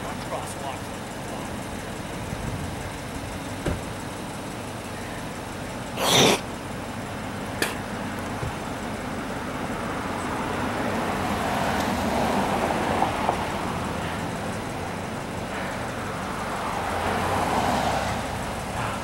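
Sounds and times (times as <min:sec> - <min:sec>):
road traffic rushing: 0:00.0 - 0:19.0
vehicle passing: 0:07.5 - 0:19.0.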